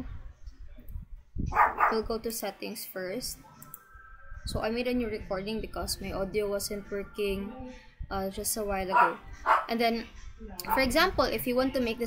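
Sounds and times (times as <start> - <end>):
dog barking: 1.5 - 2.1, 8.9 - 9.8, 10.6 - 10.9.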